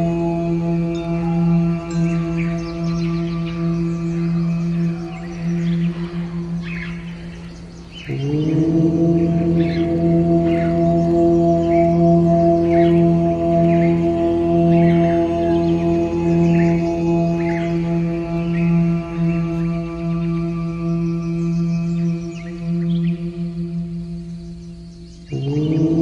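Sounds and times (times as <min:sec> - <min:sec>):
birds chirping: 0:00.0 - 0:26.0
deep om drone: 0:00.0 - 0:26.0.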